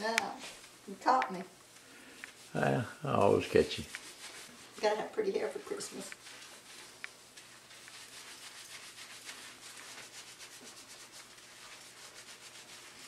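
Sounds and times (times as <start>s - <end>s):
fingers scrubbing lathered hair: 2.3s - 13.0s.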